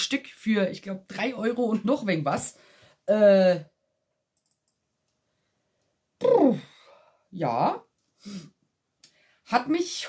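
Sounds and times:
faint clicks: 4.3s - 5.2s.

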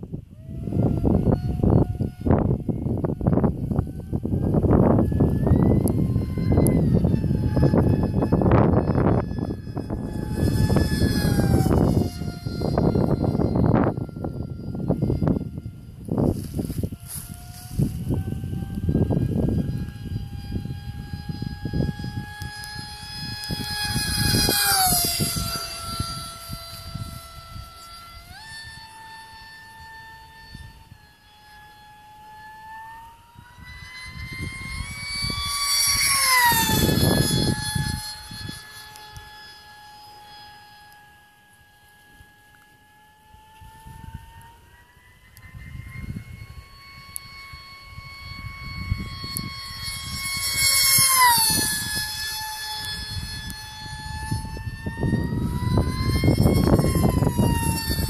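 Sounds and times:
wind buffeting microphone: 0.0s - 41.5s, 42.2s - 58.0s
rc aircraft motor whine: 0.0s - 58.0s.

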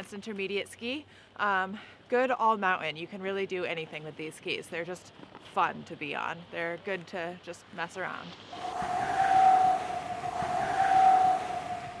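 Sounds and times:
hissing whoosh: 8.5s - 12.0s
steady held tone: 8.5s - 12.0s.

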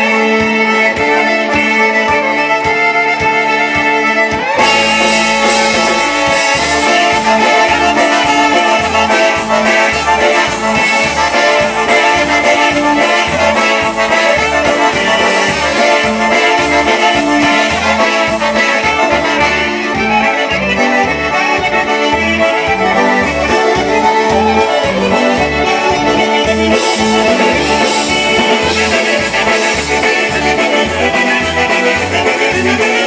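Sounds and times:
polka band playing: 0.0s - 33.0s.

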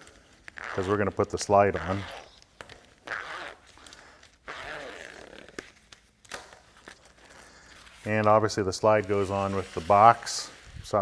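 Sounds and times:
canvas tape rustling: 0.0s - 11.0s
plastic zipper teeth unmeshing: 0.4s - 7.4s.

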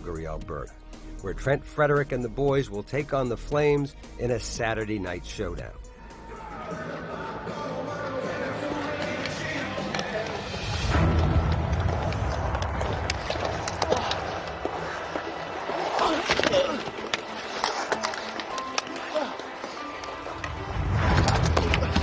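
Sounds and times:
music: 0.0s - 22.0s
arena crowd noise: 6.0s - 17.0s
hockey sticks and puck clacking: 7.8s - 22.0s
skates scraping ice: 7.8s - 22.0s.

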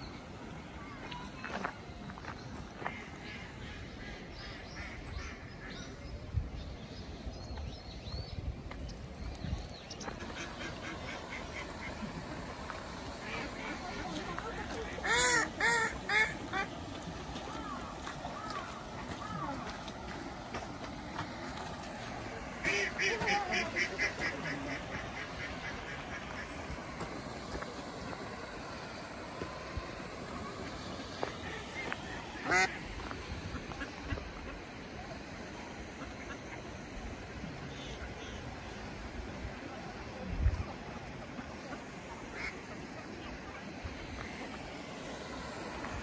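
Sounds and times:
steady background hiss: 0.0s - 46.0s
duck quacking: 15.0s - 16.7s, 22.6s - 26.5s, 32.4s - 32.8s.

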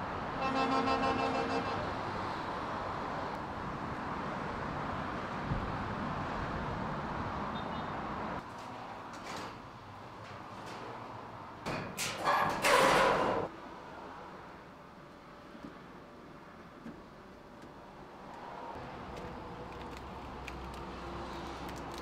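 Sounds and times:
traffic noise: 0.0s - 22.0s
vehicle horn: 0.4s - 2.0s.

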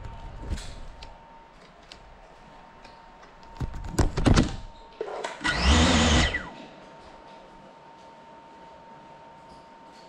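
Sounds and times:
drone motor buzz winding down: 5.4s - 6.5s.

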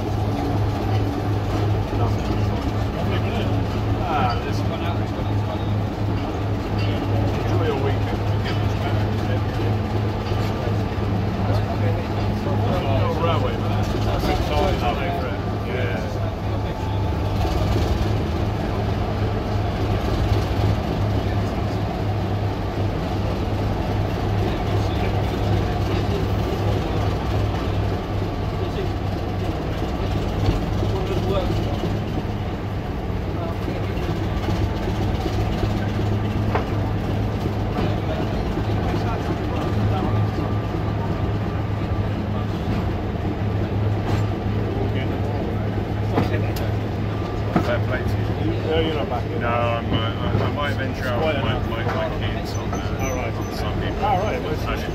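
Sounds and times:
diesel locomotive engine idling: 0.0s - 54.9s.

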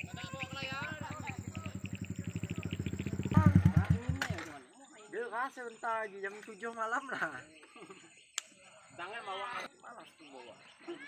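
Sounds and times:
small motorcycle engine running: 0.0s - 4.5s.

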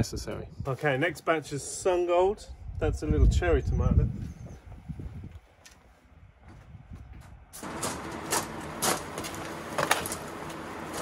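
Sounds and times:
footsteps on gravel: 5.2s - 11.0s.

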